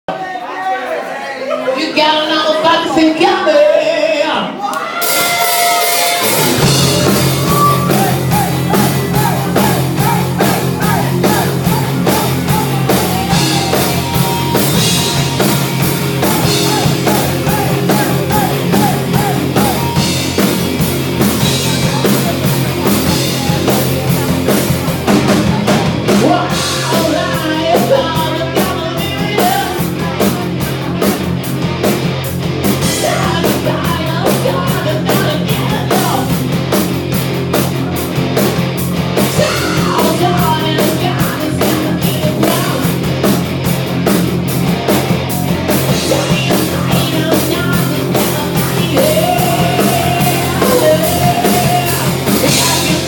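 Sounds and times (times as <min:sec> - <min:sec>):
people talking in a room: 0:00.1 - 0:27.4
bass guitar: 0:03.9 - 0:53.0
distorted electric guitars: 0:05.0 - 0:53.0
drum kit steady beat: 0:05.0 - 0:53.0.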